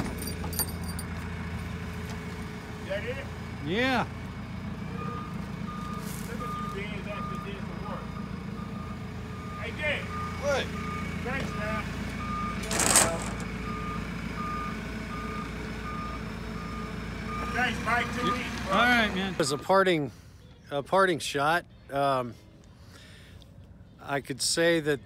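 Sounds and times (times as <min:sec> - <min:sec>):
forklift engine rumble: 0:00.0 - 0:21.0
forklift back-up alarm beeping: 0:04.4 - 0:20.5.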